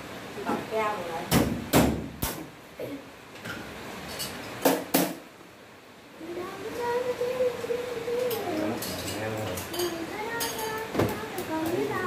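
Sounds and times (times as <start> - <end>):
sharp knocks: 4.6 - 5.2
kitchenware clattering: 8.3 - 11.2.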